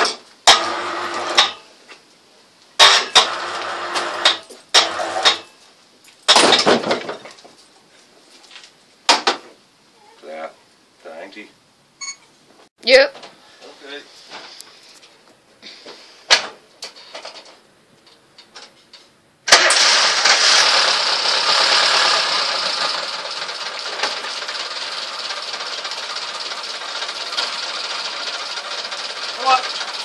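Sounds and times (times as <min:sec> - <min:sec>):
car engine starting and running: 0:00.4 - 0:01.5, 0:02.8 - 0:05.4, 0:19.5 - 0:30.0.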